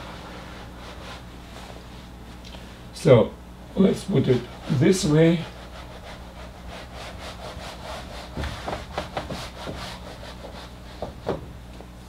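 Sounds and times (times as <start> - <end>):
whiteboard eraser rubbing: 0.0 - 1.3, 4.1 - 11.4.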